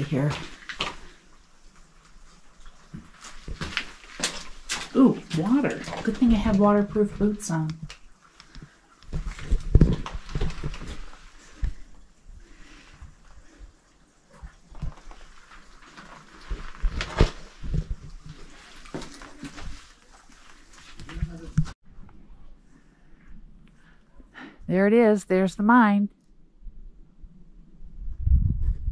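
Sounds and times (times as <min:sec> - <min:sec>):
outdoor ambience: 0:00.0 - 0:28.9
footsteps over rock and water: 0:00.2 - 0:12.1, 0:13.0 - 0:21.8.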